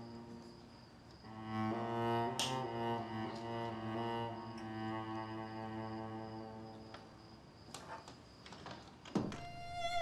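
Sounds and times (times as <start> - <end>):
held violin note: 1.3 - 7.1, 9.3 - 10.0
door shutting with dull thump: 9.1 - 9.5.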